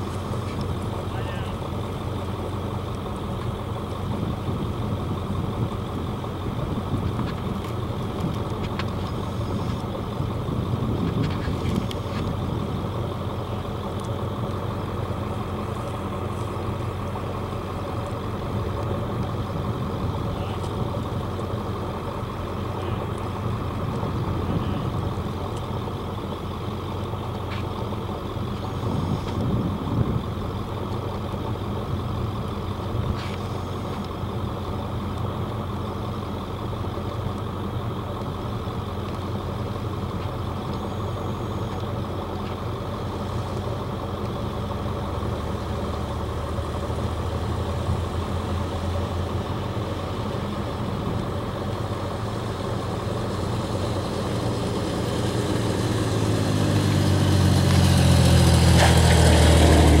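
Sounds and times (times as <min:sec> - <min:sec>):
vehicle engine idling and revving: 0:00.0 - 1:00.0.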